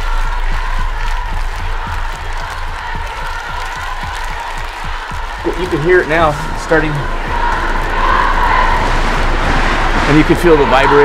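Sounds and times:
crowd noise: 0.0s - 11.0s
low drone through sound system: 0.0s - 11.0s.

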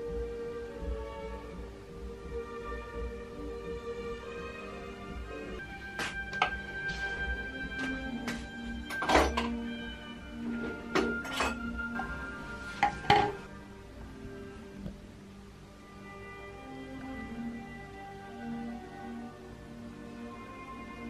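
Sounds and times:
soft instrumental music: 0.0s - 21.0s
glass and ceramic clinking: 8.9s - 9.6s.

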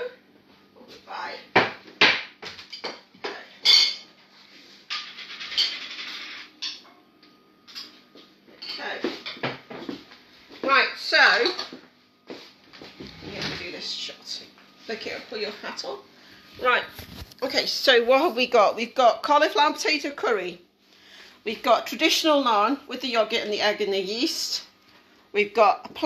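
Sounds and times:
plates and dishes clinking: 3.6s - 4.1s, 4.9s - 6.8s
person speaking: 16.6s - 20.5s.

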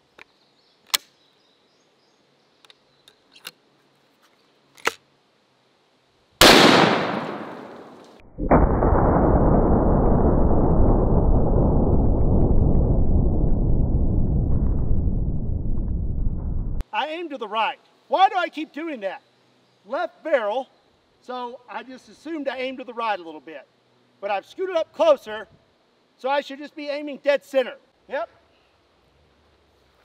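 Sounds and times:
loud rifle shot: 6.4s - 11.1s
slowed-down low rumble: 8.2s - 16.8s.

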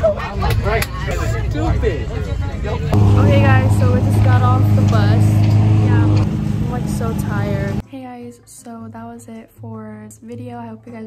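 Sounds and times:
bus engine running: 1.4s - 7.8s.

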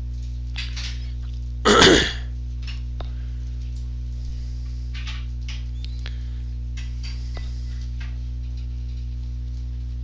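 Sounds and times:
electrical mains hum: 0.0s - 10.0s
person clearing throat: 1.7s - 2.3s.

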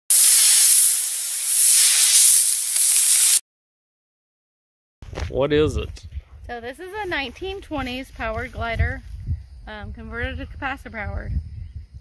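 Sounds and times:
rocket motor hissing: 0.0s - 3.4s.

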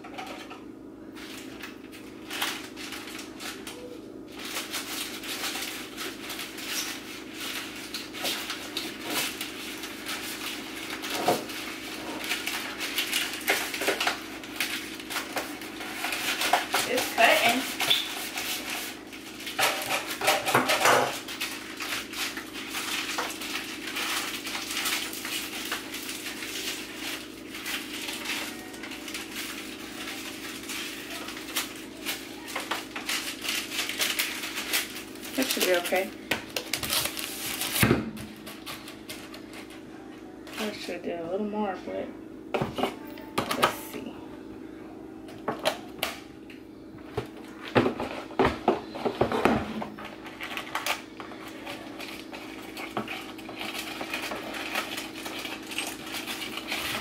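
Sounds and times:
paper crinkling and rustling: 1.1s - 39.8s, 47.0s - 57.0s.

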